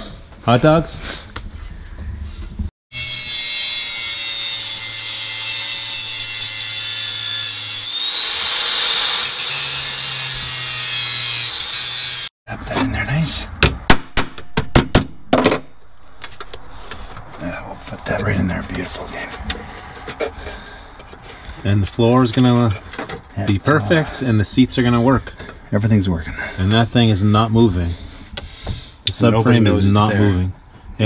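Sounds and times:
angle grinder grinding steel: 2.9s - 12.3s
sharp metal knocks: 13.6s - 16.6s.

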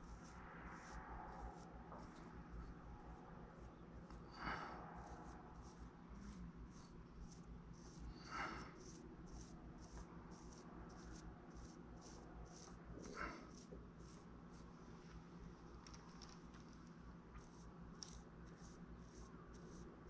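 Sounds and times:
brush scratching on clay: 0.0s - 14.8s, 15.9s - 20.0s.

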